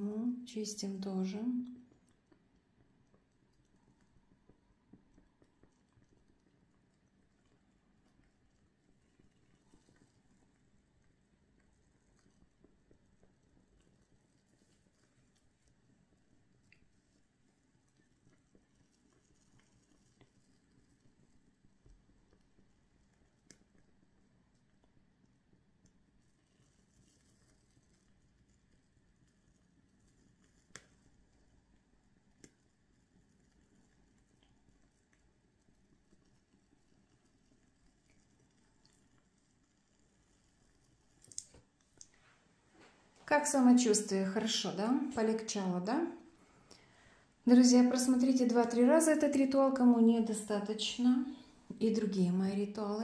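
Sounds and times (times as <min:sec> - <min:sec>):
soft ticks: 0:01.6 - 0:16.0, 0:24.5 - 0:31.5, 0:32.3 - 0:42.2.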